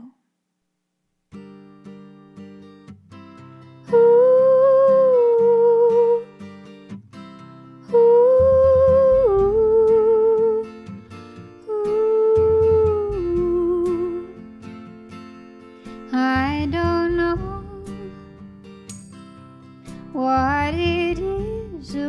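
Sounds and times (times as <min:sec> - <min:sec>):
woman singing wordless melody: 0:00.0 - 0:00.2, 0:03.8 - 0:06.4, 0:07.8 - 0:10.8, 0:11.6 - 0:14.5, 0:16.1 - 0:18.3, 0:20.1 - 0:22.0
plucked acoustic guitar: 0:01.3 - 0:22.0
low bass notes: 0:16.4 - 0:18.0, 0:20.4 - 0:21.9.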